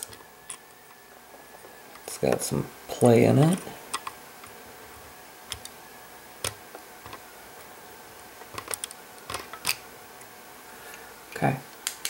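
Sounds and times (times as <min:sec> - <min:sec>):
small plastic parts clicking: 0:08.5 - 0:09.8.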